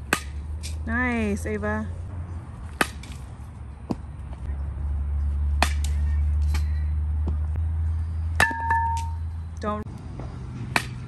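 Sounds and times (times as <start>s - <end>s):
metal bat hitting softball: 0.1s - 0.4s, 5.6s - 6.7s, 8.4s - 9.2s, 10.7s - 11.0s.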